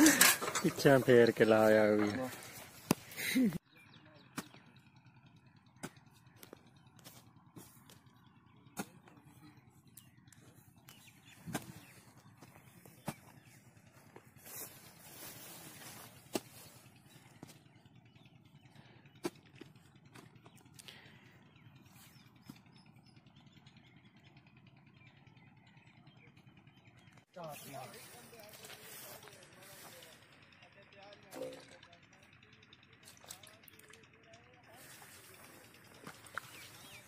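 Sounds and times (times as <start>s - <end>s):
earth scraping: 0.0s - 3.6s, 5.8s - 17.9s, 27.5s - 30.2s, 34.7s - 37.0s
hoe chopping into soil: 11.4s - 11.9s.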